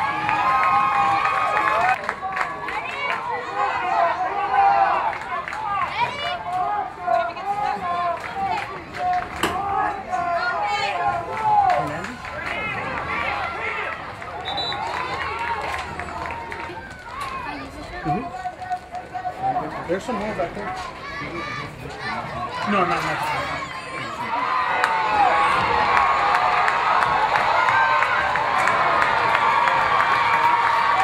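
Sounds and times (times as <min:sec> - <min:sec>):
crowd shouting outdoors: 0:00.0 - 0:31.0.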